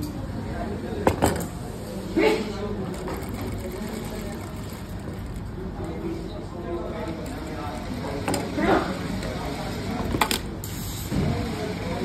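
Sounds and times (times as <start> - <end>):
sewing machine running: 2.9 - 5.6.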